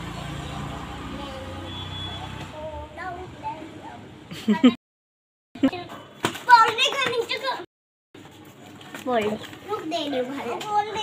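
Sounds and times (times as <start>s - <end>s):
young children talking: 0.0s - 4.8s, 9.1s - 11.0s.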